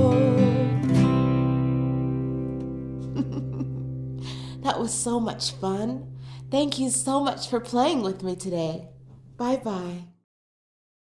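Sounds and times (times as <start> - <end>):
woman singing with vibrato: 0.0 - 0.8
acoustic guitar chord ringing: 0.0 - 8.1.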